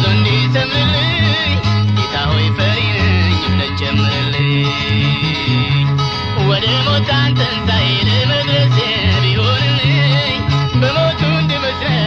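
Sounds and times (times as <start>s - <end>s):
gospel song with guitar and bass: 0.0s - 12.0s.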